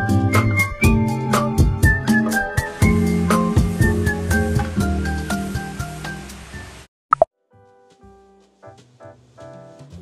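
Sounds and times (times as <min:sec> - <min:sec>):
soft background music: 0:00.0 - 0:06.9, 0:07.5 - 0:10.0.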